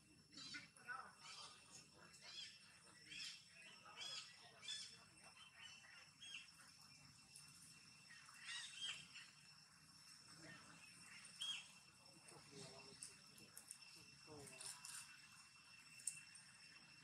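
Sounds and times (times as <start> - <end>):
birds chirping faintly: 0.0 - 17.0
faint steady high tone: 0.0 - 17.0.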